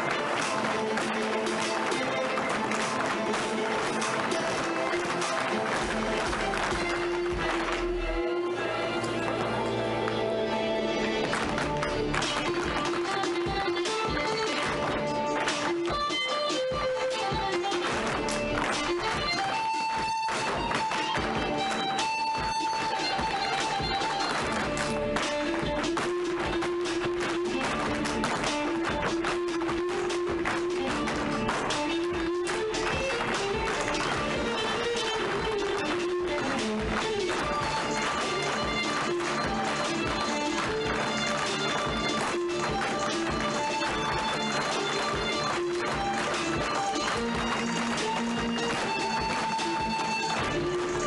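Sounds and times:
tap shoes clicking on wooden floor: 0.0 - 7.9, 11.2 - 51.0
guitar music with a beat: 12.1 - 51.0.

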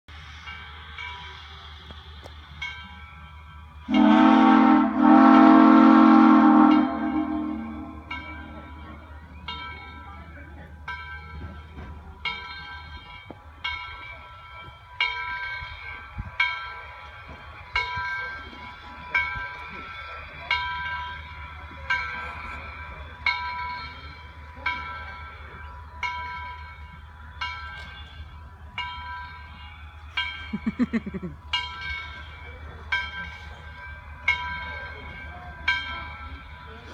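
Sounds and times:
locomotive bell ringing: 0.1 - 36.9
steam locomotive whistle: 3.9 - 8.1.

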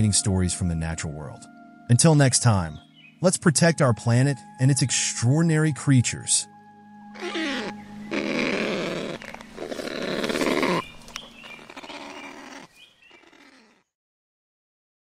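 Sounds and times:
animal harsh noisy calls: 7.2 - 13.9.

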